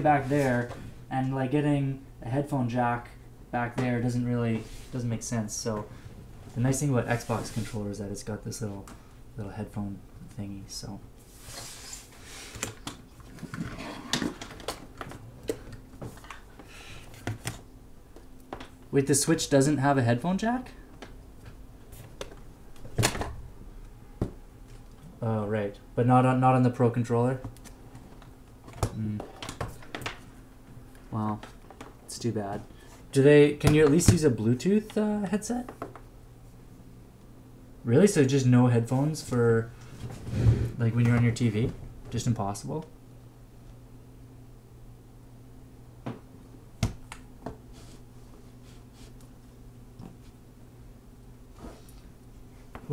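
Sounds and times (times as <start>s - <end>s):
low steady hum: 0.0s - 52.9s.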